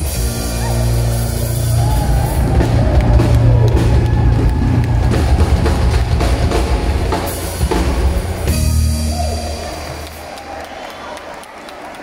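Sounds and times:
electric bass: 0:00.0 - 0:10.0
drum kit beating: 0:00.0 - 0:10.5.

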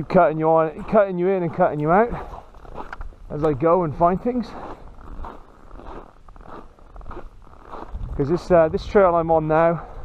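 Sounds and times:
footsteps crunching in snow: 0:00.0 - 0:09.8
low rumble on microphone: 0:04.6 - 0:10.0.

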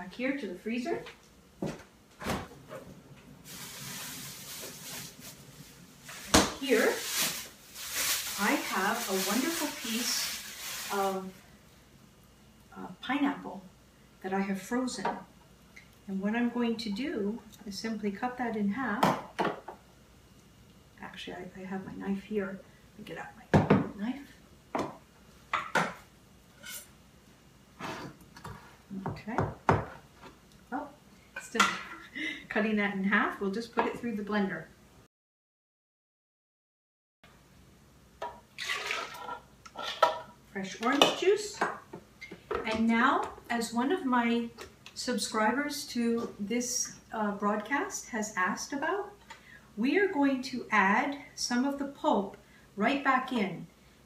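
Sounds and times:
steady freezer hiss: 0:02.2 - 0:14.6.

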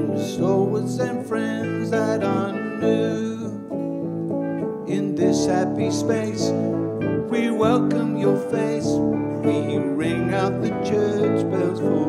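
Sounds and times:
acoustic guitar strumming: 0:00.0 - 0:12.0
musical accompaniment: 0:00.0 - 0:12.0.

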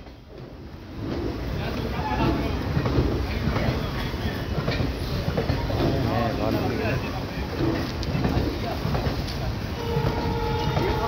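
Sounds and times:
train coaches rumbling on track: 0:00.0 - 0:11.0
people's voices: 0:01.0 - 0:11.0.

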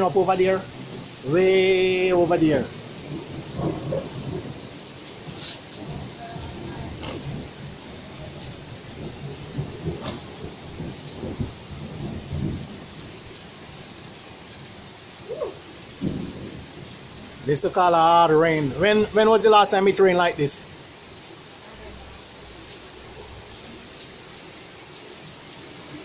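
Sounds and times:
heavy rain on pavement and roofs: 0:00.0 - 0:26.0.

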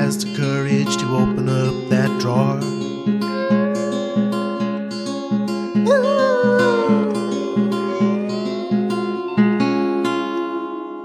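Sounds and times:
strummed acoustic guitar: 0:00.0 - 0:03.4.

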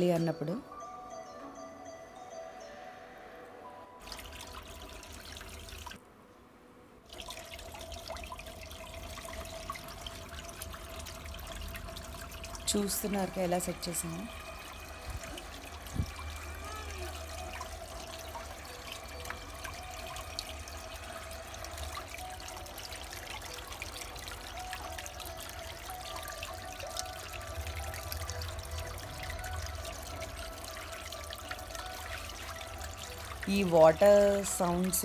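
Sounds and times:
fountain water trickling: 0:04.0 - 0:06.0, 0:07.0 - 0:35.0.

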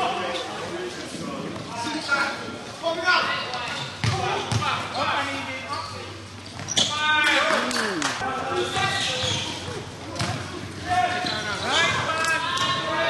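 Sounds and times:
basketball bouncing on court: 0:04.0 - 0:04.8, 0:10.2 - 0:10.5.

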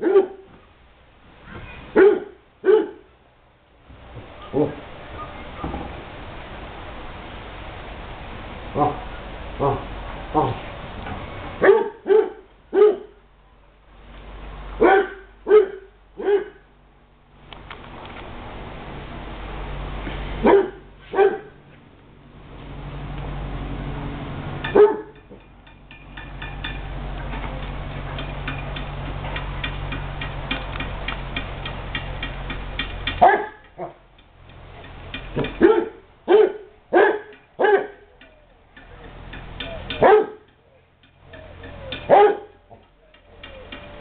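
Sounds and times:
dog barking: 0:00.0 - 0:00.5, 0:02.0 - 0:03.1, 0:08.8 - 0:09.0, 0:09.6 - 0:10.6, 0:11.6 - 0:13.2, 0:14.8 - 0:16.7, 0:20.4 - 0:21.6, 0:24.7 - 0:25.2, 0:33.2 - 0:34.0, 0:35.6 - 0:38.0, 0:40.0 - 0:40.4, 0:42.1 - 0:42.6.

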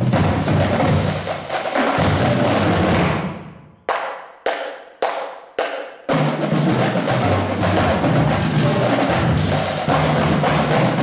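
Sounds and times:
marching drumline playing: 0:00.0 - 0:04.0, 0:05.0 - 0:11.0.

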